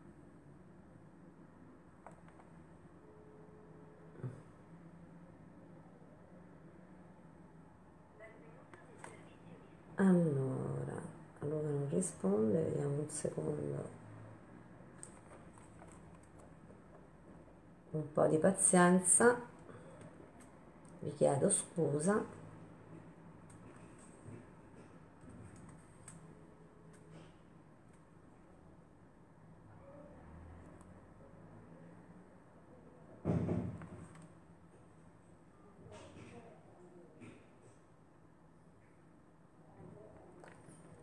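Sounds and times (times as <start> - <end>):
faint low hum: 0.0 - 41.0.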